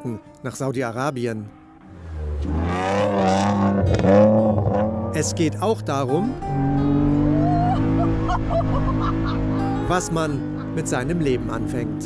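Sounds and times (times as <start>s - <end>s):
car engine revving: 1.5s - 12.0s.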